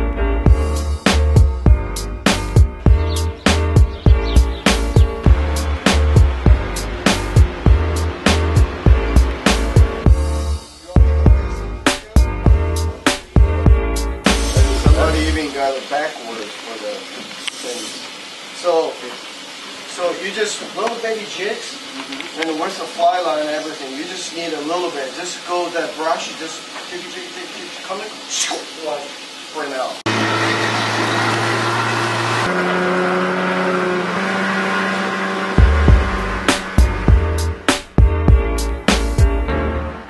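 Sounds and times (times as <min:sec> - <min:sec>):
water rushing: 0:00.0 - 0:40.0
heavy low thumps: 0:00.5 - 0:15.4, 0:35.6 - 0:39.6
outboard motor running: 0:01.7 - 0:10.6, 0:30.1 - 0:37.7
people talking indistinctly: 0:10.7 - 0:19.2, 0:19.9 - 0:29.9
faint steady hiss: 0:14.3 - 0:30.1.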